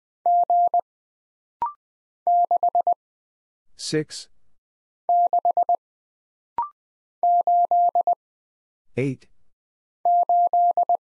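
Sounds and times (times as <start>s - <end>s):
morse code tones: 10.1s - 11.0s.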